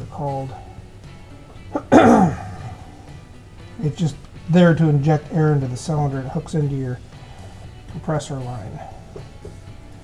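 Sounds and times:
quiet background music: 0.0s - 10.0s
man coughing: 1.7s - 2.8s.

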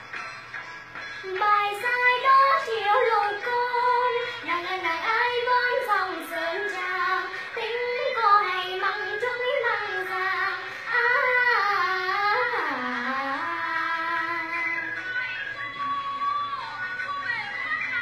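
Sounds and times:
girl singing folk song: 1.2s - 18.0s.

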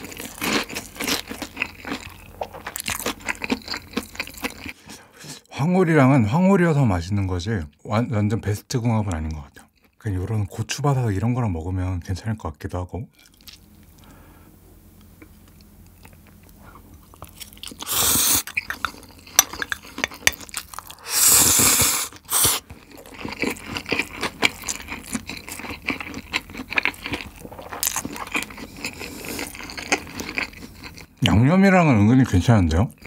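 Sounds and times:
close-miked chewing and crunching: 0.0s - 5.5s, 13.1s - 14.2s, 15.0s - 33.0s.

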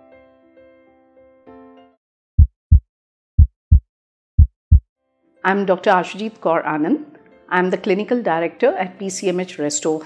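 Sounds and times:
heartbeat-like double thumps: 2.4s - 2.8s, 3.4s - 3.8s, 4.4s - 4.8s.

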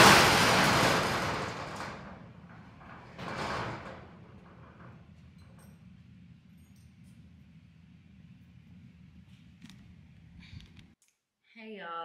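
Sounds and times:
metal roll-up door rattling: 0.0s - 6.0s.

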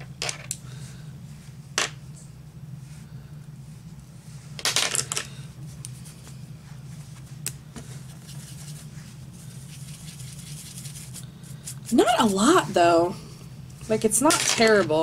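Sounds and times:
steady low hum: 0.0s - 15.0s
brush rustling on tissue: 5.6s - 13.0s.

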